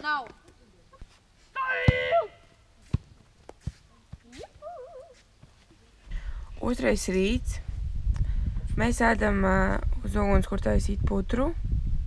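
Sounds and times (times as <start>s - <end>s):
child shouting: 1.6s - 2.4s.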